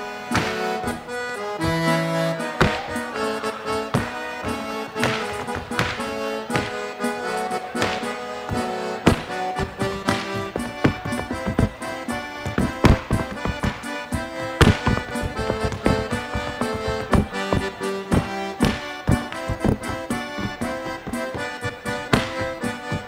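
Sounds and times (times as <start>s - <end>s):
accordion playing chords: 0.0s - 23.0s
boots striking stage floor: 0.3s - 23.0s.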